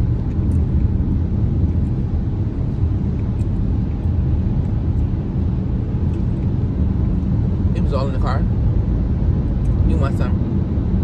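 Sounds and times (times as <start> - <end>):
car cabin road and engine rumble: 0.0 - 11.0.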